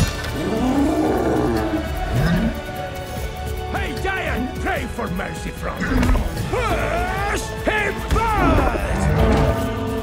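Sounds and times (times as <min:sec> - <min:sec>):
film music: 0:00.0 - 0:10.0
cat-like roar: 0:00.4 - 0:02.6.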